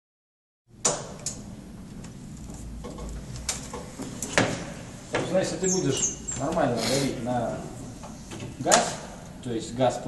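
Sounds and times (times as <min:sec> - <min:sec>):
low room noise: 0:00.7 - 0:10.0.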